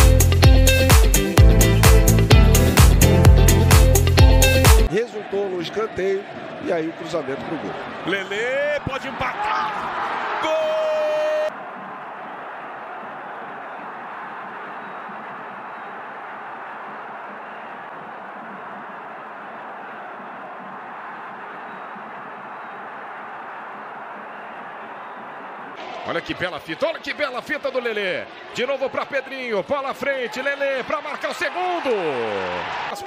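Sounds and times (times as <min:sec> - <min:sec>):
commentator shouting: 0:04.9 - 0:11.5
stadium crowd murmur: 0:04.9 - 0:33.0.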